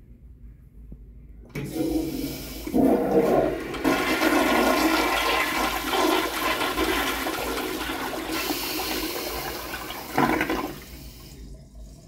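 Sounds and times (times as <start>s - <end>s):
toilet flushing: 1.5s - 12.0s
toilet bowl refilling: 1.6s - 11.2s.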